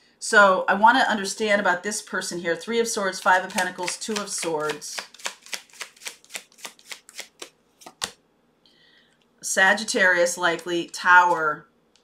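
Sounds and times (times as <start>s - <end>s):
cards being shuffled by hand: 3.1s - 8.2s
card tapping: 3.2s - 8.2s.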